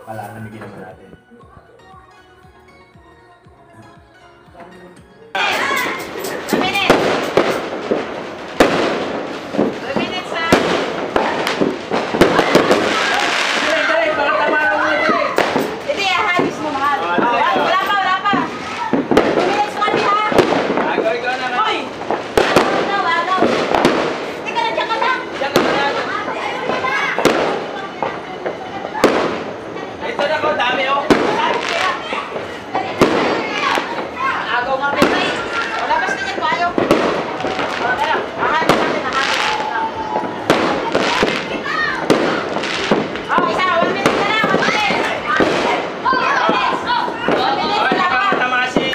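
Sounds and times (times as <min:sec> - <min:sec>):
people talking and calling out: 0:00.0 - 0:48.9
fireworks and firecrackers banging: 0:04.6 - 0:48.9.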